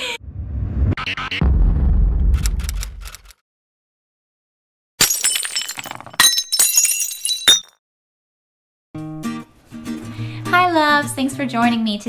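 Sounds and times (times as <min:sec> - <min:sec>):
glass shattering: 0:05.0 - 0:07.8.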